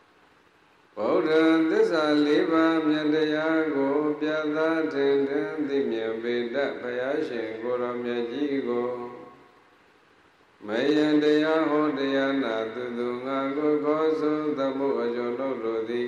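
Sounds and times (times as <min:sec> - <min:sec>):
monk chanting into microphone: 0:01.0 - 0:09.5, 0:10.6 - 0:16.0.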